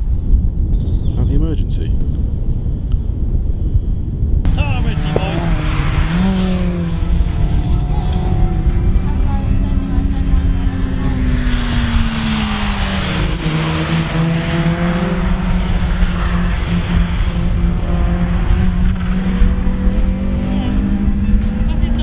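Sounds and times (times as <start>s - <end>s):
car engine on race track: 4.4s - 22.0s.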